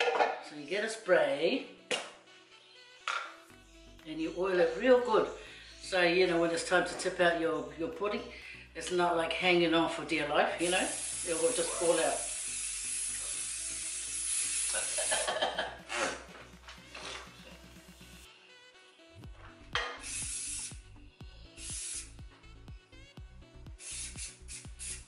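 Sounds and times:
aerosol oil spray hissing: 10.6 - 16.1, 19.8 - 22.2, 23.7 - 25.0.

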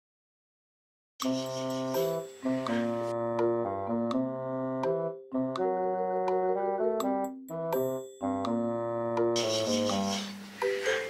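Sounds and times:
gentle background music: 1.2 - 11.0.

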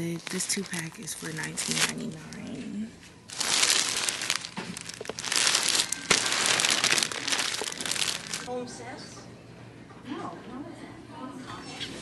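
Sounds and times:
plastic wrapping crinkling: 0.0 - 8.5.

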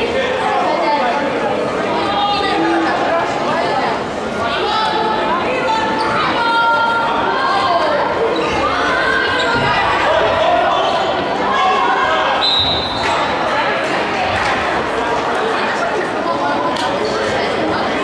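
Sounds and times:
voices of players and spectators: 0.0 - 18.0.

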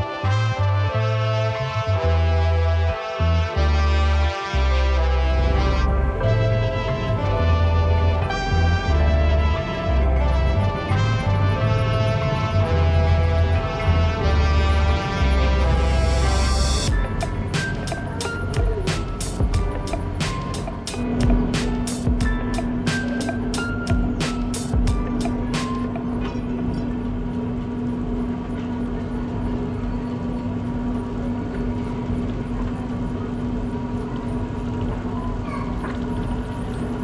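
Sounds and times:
plucked background music: 0.0 - 27.8
steady hum: 0.0 - 37.0
railway car mechanical rumble: 4.6 - 37.0.

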